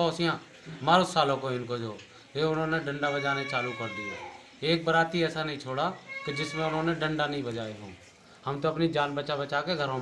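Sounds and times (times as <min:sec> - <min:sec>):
man speaking: 0:00.0 - 0:10.0.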